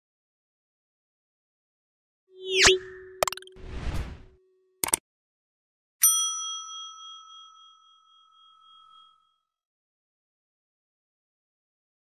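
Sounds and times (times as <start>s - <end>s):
bell ding: 6.0s - 9.3s.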